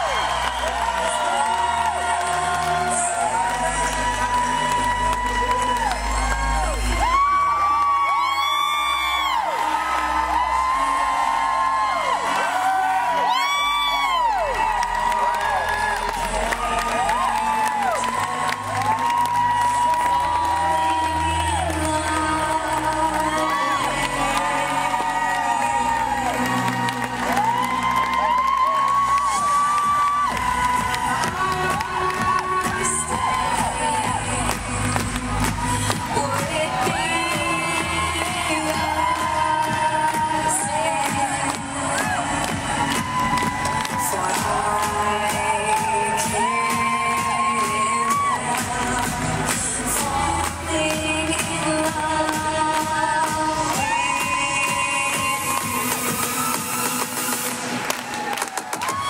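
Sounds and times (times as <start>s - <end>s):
audience cheering and whooping: 0.0s - 59.0s.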